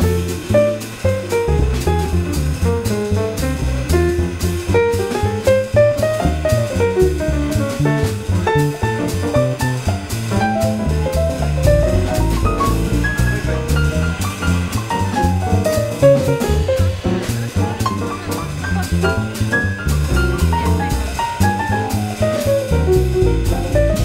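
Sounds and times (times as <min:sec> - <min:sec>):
drum cymbal beat: 0:00.0 - 0:24.0
jazz piano melody: 0:00.0 - 0:24.0
plucked double bass: 0:00.0 - 0:24.0.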